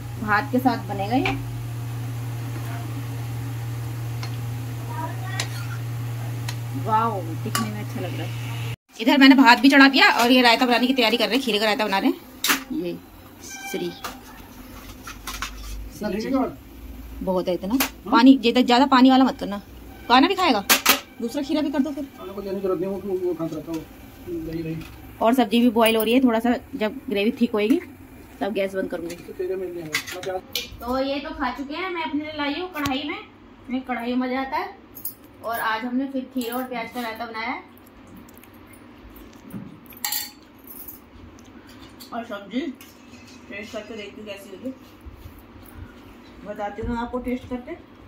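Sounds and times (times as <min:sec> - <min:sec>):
steady low hum: 0:09.4 - 0:29.8.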